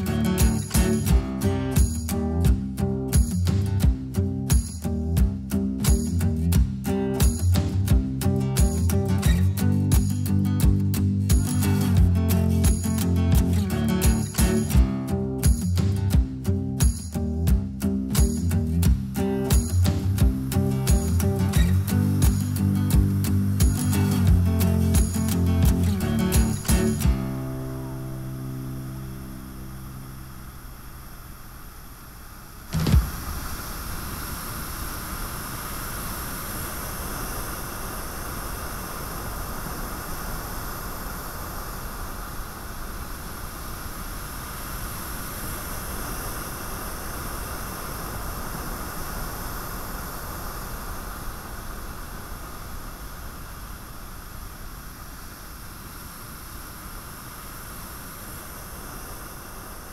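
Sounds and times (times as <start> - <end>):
guitar music: 0.0 - 30.7
wind: 0.0 - 59.9
ocean surf: 32.6 - 59.9
sudden thump: 32.7 - 33.6.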